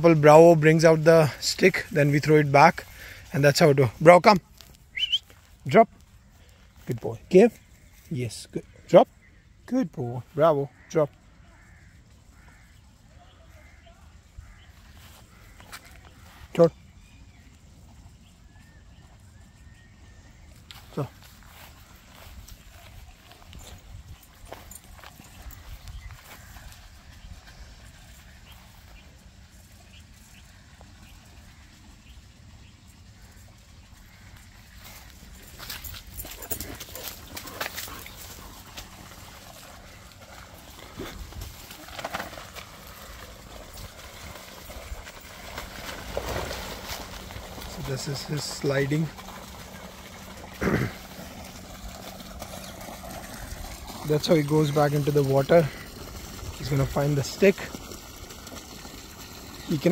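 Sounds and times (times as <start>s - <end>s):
dry grass and leaves rustling: 11.5s - 18.3s, 19.2s - 59.9s.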